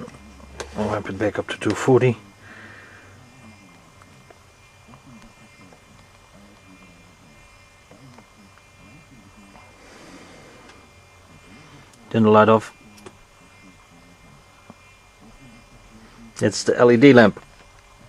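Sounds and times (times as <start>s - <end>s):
faint room noise: 0.0s - 18.0s
low mains hum: 0.0s - 18.0s.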